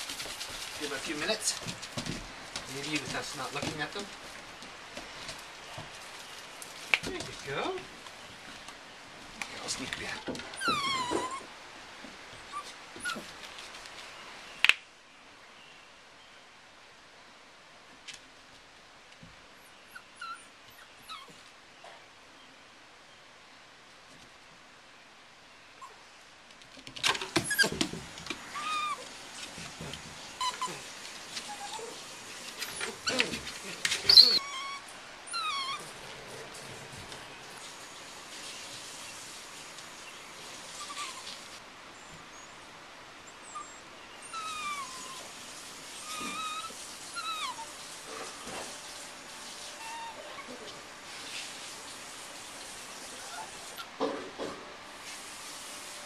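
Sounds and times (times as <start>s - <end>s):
scuffling knocks: 0.0s - 6.1s, 27.0s - 28.5s
puppies whining and yipping: 10.5s - 11.5s, 12.4s - 13.3s, 19.9s - 21.4s, 27.4s - 27.8s, 28.5s - 29.2s, 30.3s - 36.0s, 40.8s - 41.4s, 43.4s - 45.3s, 46.0s - 48.8s, 49.7s - 50.7s, 53.1s - 54.0s.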